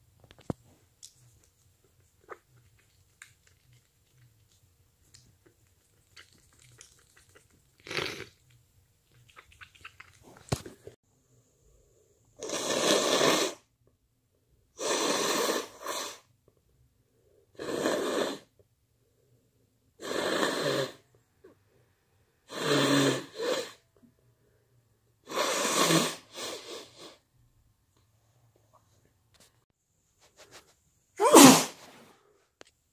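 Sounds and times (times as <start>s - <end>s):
person blowing nose: 12.4s - 13.6s, 14.8s - 16.2s, 17.6s - 18.5s, 22.5s - 23.8s, 25.3s - 27.2s, 31.2s - 32.0s.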